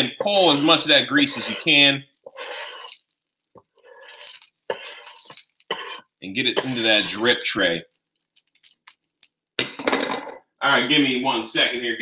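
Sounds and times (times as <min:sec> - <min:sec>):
spatula scraping a griddle: 0:00.0 - 0:07.5.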